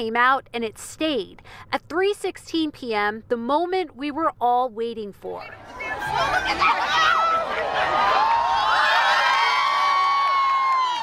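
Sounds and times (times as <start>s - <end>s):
crowd cheering and screaming: 5.6s - 11.0s
long high cry: 6.0s - 11.0s.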